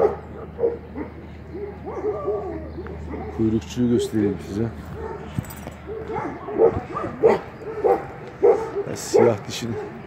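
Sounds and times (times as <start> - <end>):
dog barking: 0.0 - 3.5, 4.9 - 10.0.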